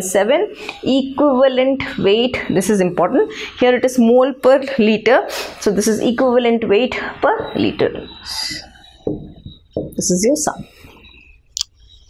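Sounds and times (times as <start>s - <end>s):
marker squeaking on whiteboard: 5.4s - 12.0s.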